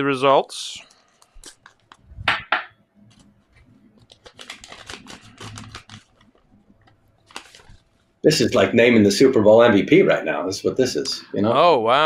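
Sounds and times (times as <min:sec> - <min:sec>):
small crackles: 0:00.8 - 0:02.1, 0:03.0 - 0:08.2
paper rustling and crinkling: 0:03.1 - 0:08.1.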